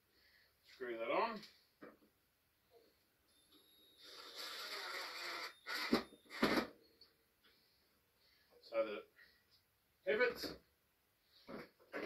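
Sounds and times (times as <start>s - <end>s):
cordless drill driving screw: 4.0s - 6.6s.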